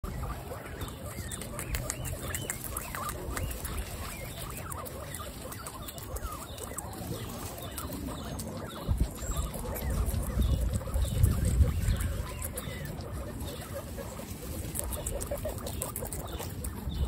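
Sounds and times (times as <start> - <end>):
guinea pigs munching: 0.0 - 17.0.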